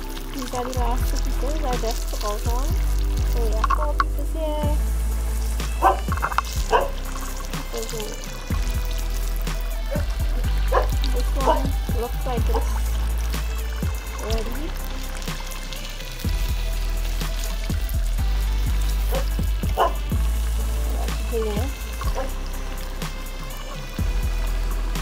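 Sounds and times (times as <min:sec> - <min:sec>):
fish frying in hot oil: 0:00.0 - 0:25.0
music with bass and voice: 0:00.0 - 0:25.0.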